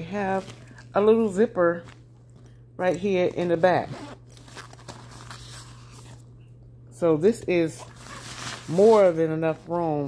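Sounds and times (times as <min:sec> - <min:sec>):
cloth bag rustling: 0:00.0 - 0:02.1, 0:03.4 - 0:06.3, 0:07.6 - 0:10.0
zipper pocket opening: 0:03.5 - 0:06.2, 0:07.8 - 0:08.8.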